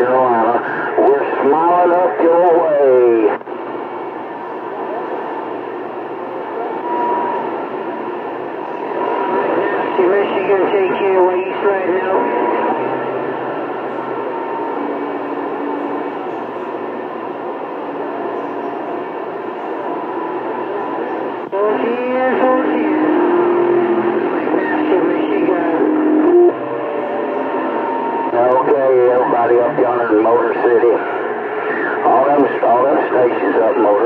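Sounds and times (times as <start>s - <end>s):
radio band noise hiss: 0.0s - 34.0s
warbling radio tones: 0.0s - 34.0s
faint garbled distant voices: 4.1s - 34.0s.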